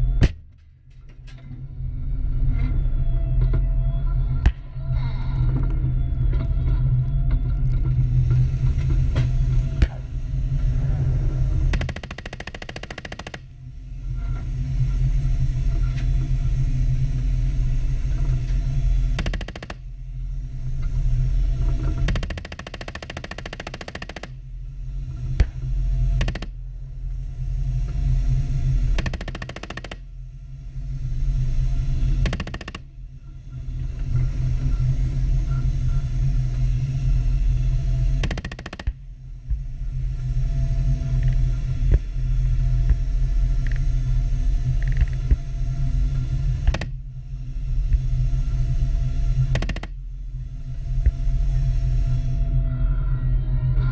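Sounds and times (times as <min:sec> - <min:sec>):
rapid rattling bursts: 0:11.7 - 0:13.5, 0:22.0 - 0:24.4.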